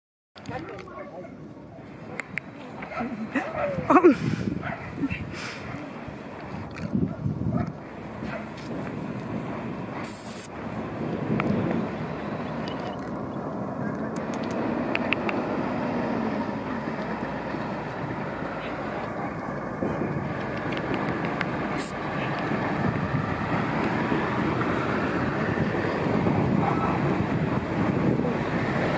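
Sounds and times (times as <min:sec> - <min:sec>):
outdoor background noise: 0:00.4 - 0:28.9
faint clicks: 0:13.9 - 0:15.4.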